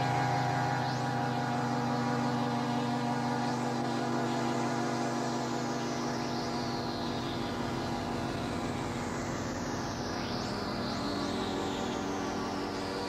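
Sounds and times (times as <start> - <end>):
ambient synthesizer music: 0.0 - 13.0.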